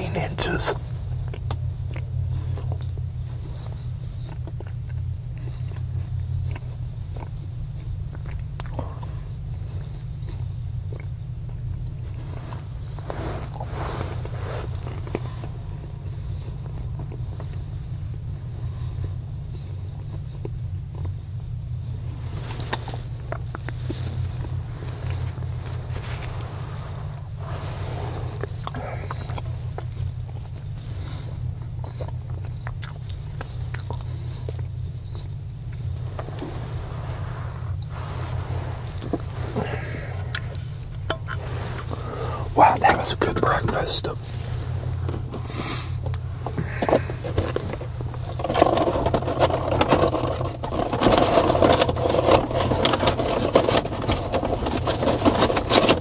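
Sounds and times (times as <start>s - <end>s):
man chewing toast: 0.0s - 56.0s
vehicle cabin hum: 0.0s - 56.0s.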